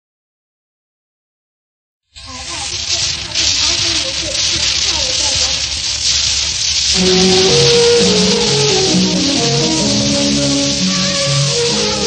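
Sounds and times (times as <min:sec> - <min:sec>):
record surface hiss: 0:02.1 - 0:12.0
faint music: 0:06.8 - 0:12.0.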